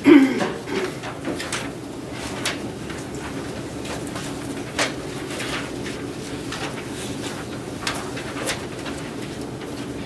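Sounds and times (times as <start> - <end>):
low room hum: 0.0 - 10.0
papers rustling: 0.6 - 10.0.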